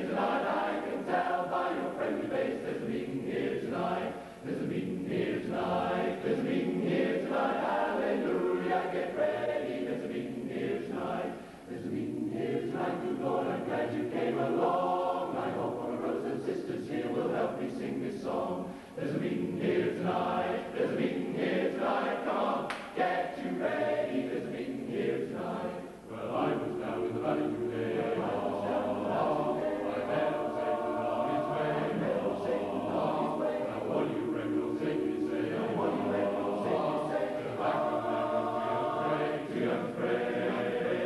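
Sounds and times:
male chorus singing a cappella: 0.0s - 41.0s.

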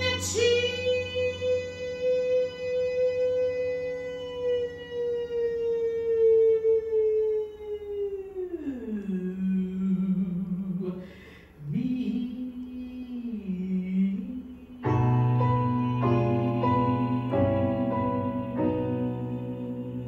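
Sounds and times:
woman singing long notes: 0.0s - 20.0s
woman taking a breath: 11.0s - 11.6s.

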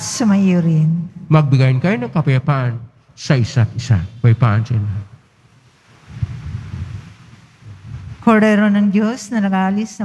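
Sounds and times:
wind noise on microphone: 5.8s - 8.5s.

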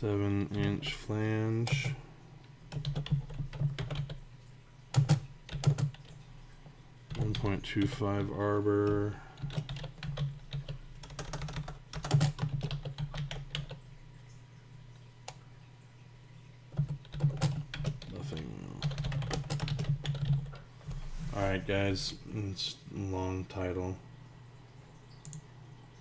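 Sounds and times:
computer keyboard typing: 1.6s - 2.0s, 2.7s - 4.2s, 4.9s - 6.3s, 7.1s - 13.8s, 16.7s - 20.6s.

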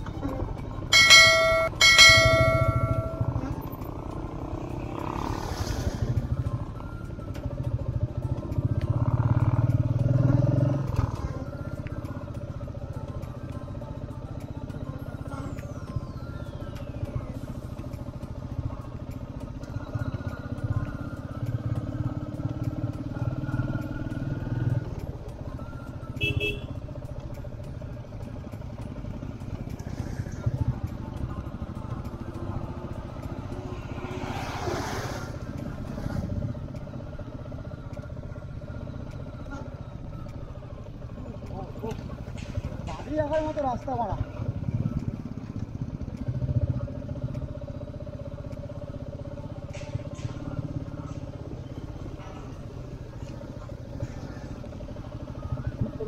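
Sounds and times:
motorcycle engine running: 0.0s - 56.0s
motorcycle horn beeps: 26.1s - 26.9s.

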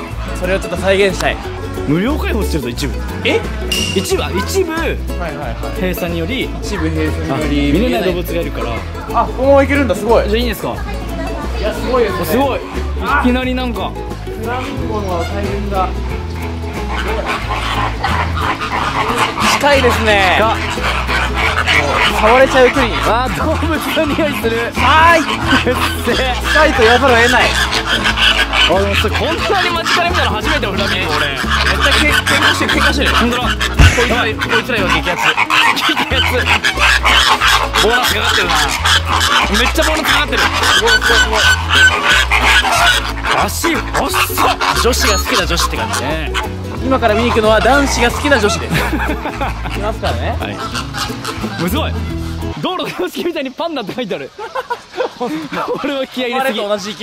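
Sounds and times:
background music with bass beat: 11.6s - 35.1s
flock of flamingos calling: 14.6s - 53.2s, 54.3s - 57.0s.

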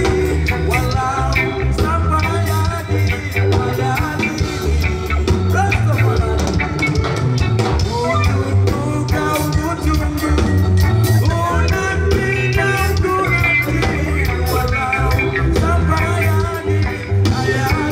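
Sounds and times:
live band over loudspeakers: 0.0s - 17.9s
person singing: 0.0s - 17.9s.

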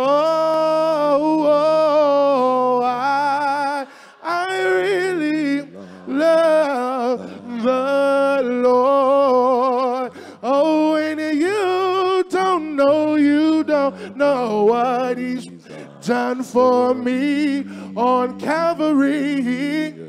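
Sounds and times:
man singing gospel solo: 0.0s - 20.0s.

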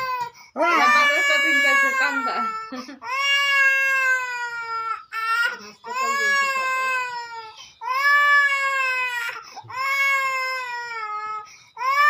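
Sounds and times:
infant crying: 0.0s - 12.0s.

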